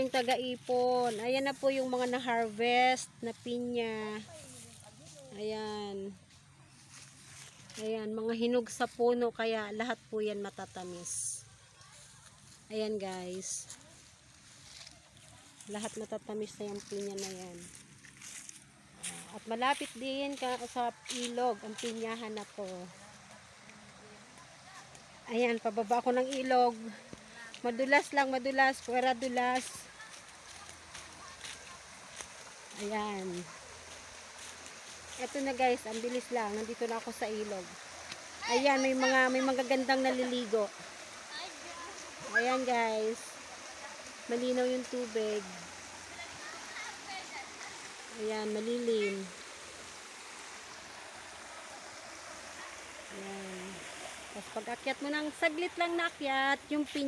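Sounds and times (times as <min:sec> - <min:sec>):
faint steady hiss: 0:00.0 - 0:57.0
river running over rocks: 0:13.3 - 0:57.0.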